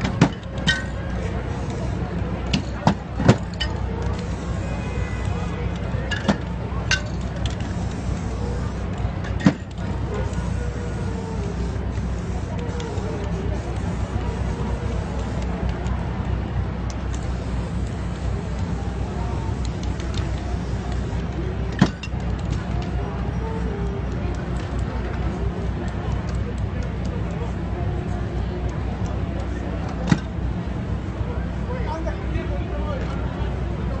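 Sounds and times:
city street traffic: 0.0 - 34.0
spray-paint cans clacking: 5.2 - 10.7.

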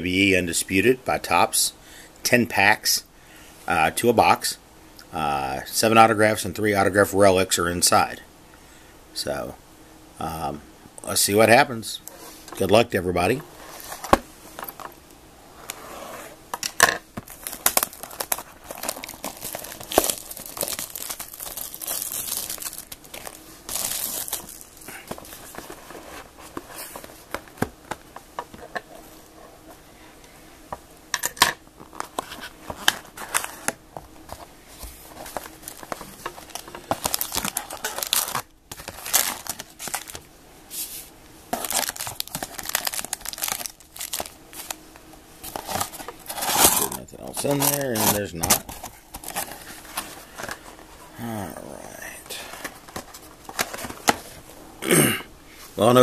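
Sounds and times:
plastic wrapping tearing and crinkling: 17.3 - 25.5, 35.2 - 40.2, 41.5 - 44.8, 45.4 - 50.0.

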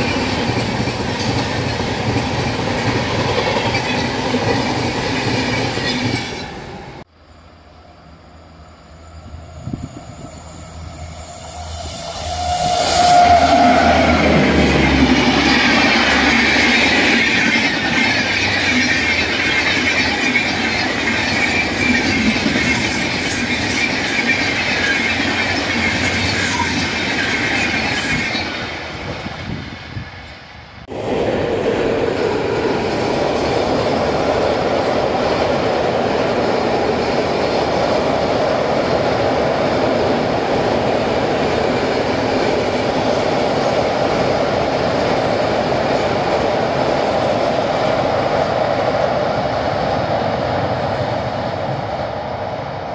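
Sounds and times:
train wheels on rails: 0.0 - 7.1, 9.0 - 52.9
train crossing steel bridge: 0.0 - 52.9
high-pitched hiss: 7.1 - 13.6.

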